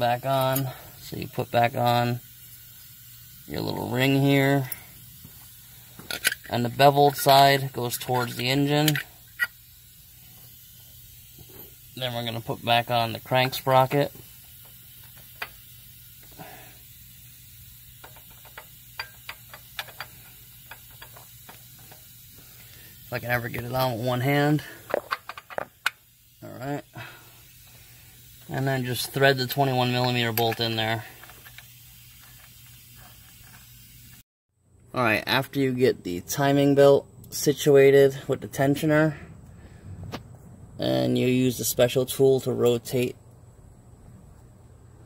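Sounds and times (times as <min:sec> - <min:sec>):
faint background hiss: 0:00.0 - 0:34.2.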